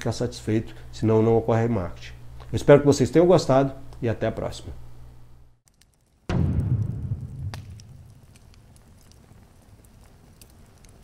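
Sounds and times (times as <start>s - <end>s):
deep boom with rumble: 6.3s - 8.6s
faint crackling ticks: 7.6s - 11.0s.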